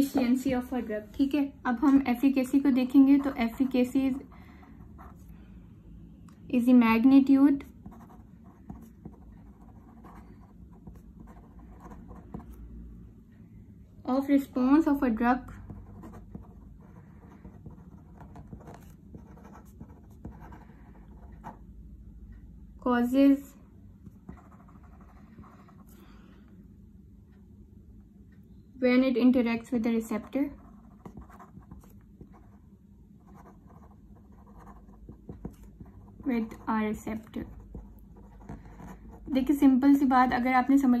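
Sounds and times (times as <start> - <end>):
pen scratching on paper: 1.8 - 4.3, 5.0 - 5.3, 7.6 - 12.6, 15.7 - 21.6, 24.3 - 25.9, 30.1 - 32.5, 33.3 - 40.9.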